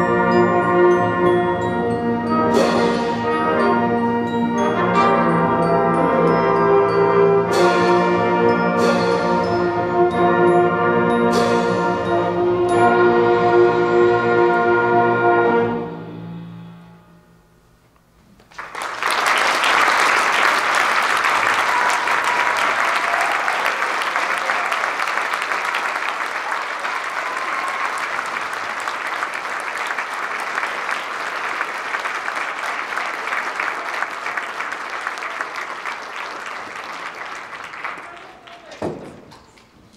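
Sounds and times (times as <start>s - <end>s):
audience applauding: 18.4s - 38.9s.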